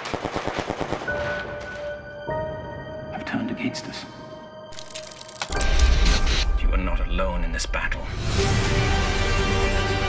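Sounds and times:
machine-gun fire: 0.0 - 1.4
trailer music: 0.5 - 10.0.

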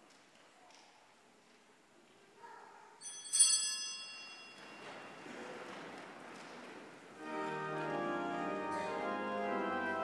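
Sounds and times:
congregation rustling and shuffling: 0.0 - 10.0
small bell ringing: 3.0 - 5.2.

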